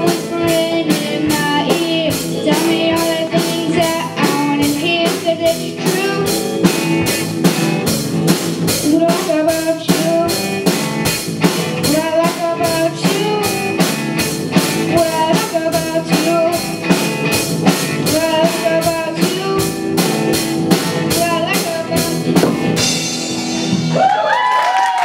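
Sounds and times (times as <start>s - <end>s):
driving drum beat: 0.0s - 24.2s
electric guitars: 0.0s - 24.7s
bass guitar: 0.0s - 25.0s.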